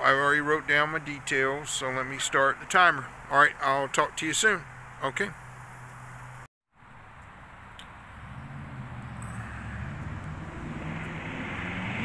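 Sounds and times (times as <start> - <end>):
distant engine drone: 0.0 - 12.0.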